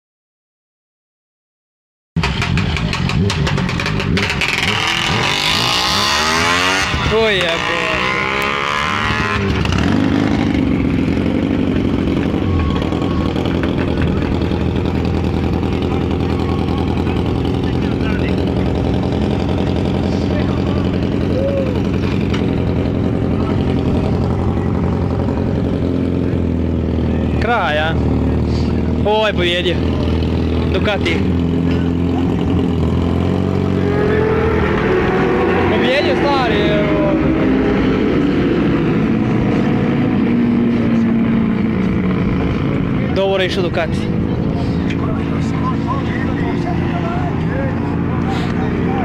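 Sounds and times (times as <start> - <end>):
motorcycle engines revving: 2.2 - 49.0.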